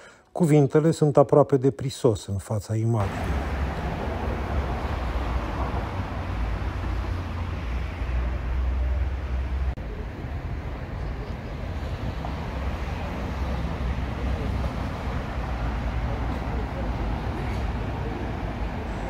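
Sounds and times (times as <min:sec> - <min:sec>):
city road traffic rumble: 0:03.0 - 0:19.0.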